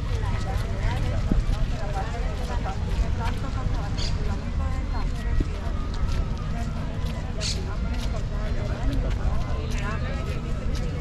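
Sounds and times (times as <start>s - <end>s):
footsteps on paving: 0.0s - 11.0s
people talking: 0.0s - 11.0s.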